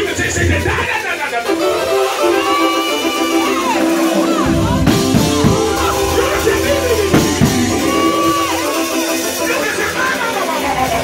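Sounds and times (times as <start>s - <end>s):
gospel band playing: 0.0s - 11.0s
person singing: 1.4s - 9.4s
drum hits: 2.2s - 9.6s.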